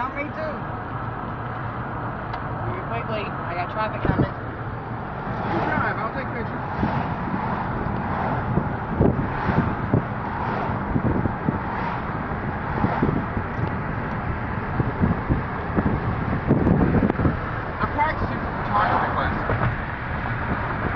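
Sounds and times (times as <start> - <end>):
road and wind noise: 0.0 - 20.9.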